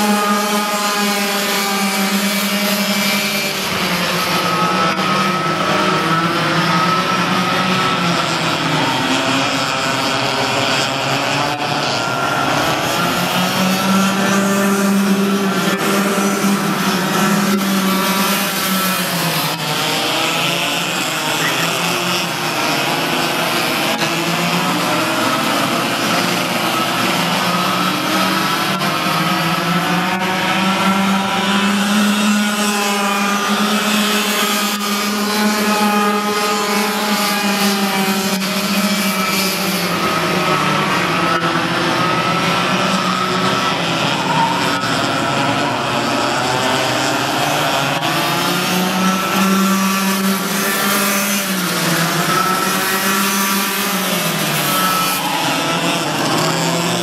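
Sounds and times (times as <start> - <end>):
kart engines racing: 0.0 - 57.0.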